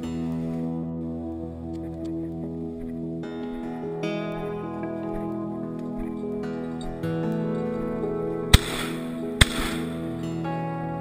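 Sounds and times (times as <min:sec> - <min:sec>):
acoustic guitar music: 0:00.0 - 0:11.0
shotgun shots: 0:08.5 - 0:10.0.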